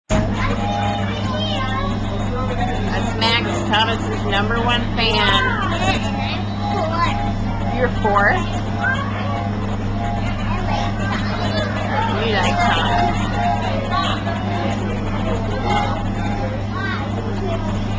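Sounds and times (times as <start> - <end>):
children chattering: 0.1 - 17.9
train coach hum and rumble: 0.1 - 17.9.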